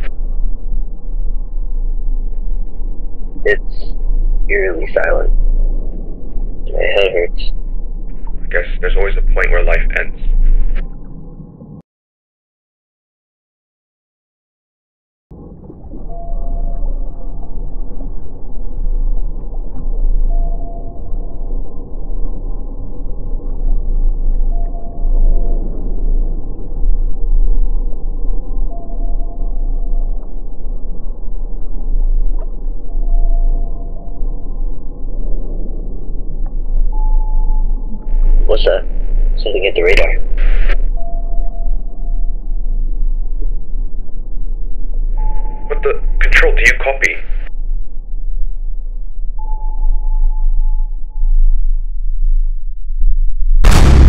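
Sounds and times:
heavy low rumble: 0:00.0 - 0:11.8, 0:15.3 - 0:54.0
murky underwater noise: 0:00.0 - 0:11.8, 0:15.4 - 0:52.4
steady high tone: 0:06.6 - 0:07.6, 0:08.2 - 0:10.7
thin steady tone: 0:15.9 - 0:52.9.

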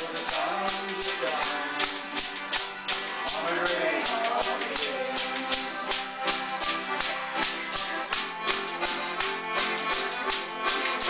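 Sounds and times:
acoustic guitar: 0:00.0 - 0:11.0
button accordion: 0:00.0 - 0:11.0
jingling percussion strikes: 0:00.0 - 0:11.0.

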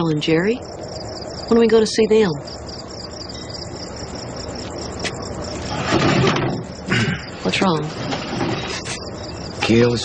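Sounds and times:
crickets chirping: 0:00.0 - 0:10.0
rustle of movement: 0:04.5 - 0:09.2.

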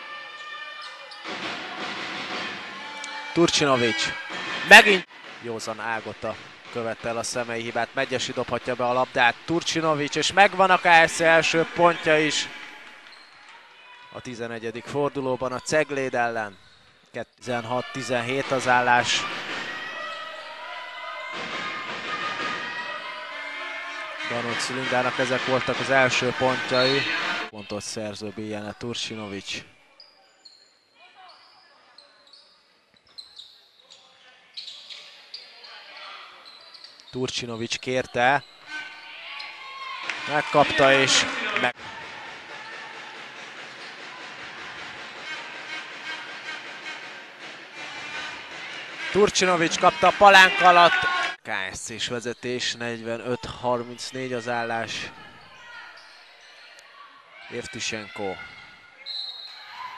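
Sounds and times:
crowd noise: 0:00.0 - 0:32.4, 0:34.3 - 0:51.5, 0:52.2 - 0:59.9
indoor arena ambience: 0:00.0 - 0:59.9.

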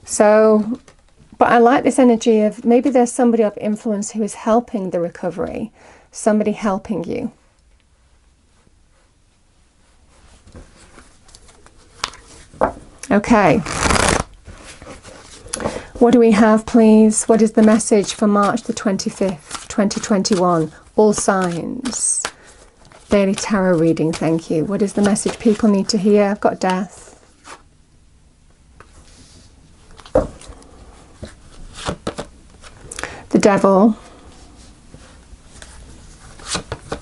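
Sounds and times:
cards riffling: 0:13.6 - 0:14.3
cards swishing: 0:13.6 - 0:15.4.

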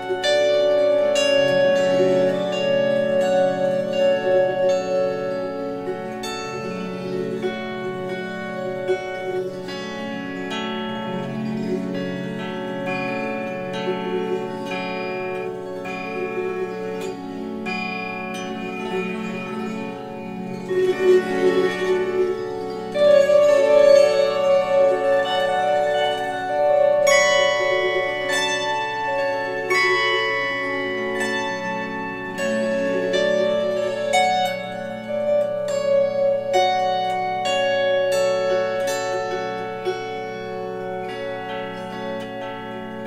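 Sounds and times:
harp plucked melody: 0:00.0 - 0:43.0.

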